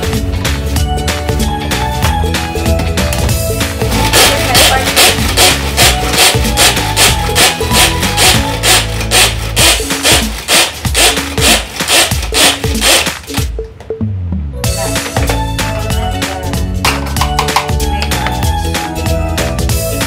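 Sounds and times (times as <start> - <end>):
background music: 0.0 - 20.0
pull cord food chopper whirring: 4.0 - 13.5.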